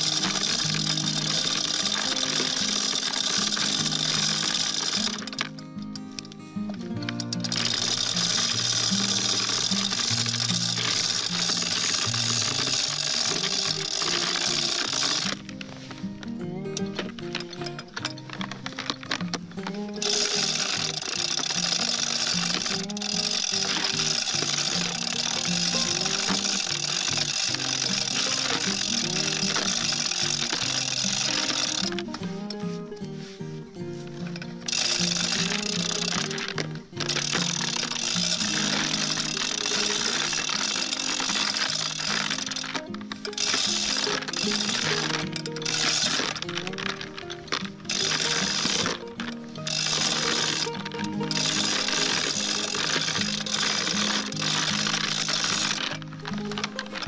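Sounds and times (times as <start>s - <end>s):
bright high music layer: 0.0s - 57.0s
melody of held notes: 0.0s - 57.0s.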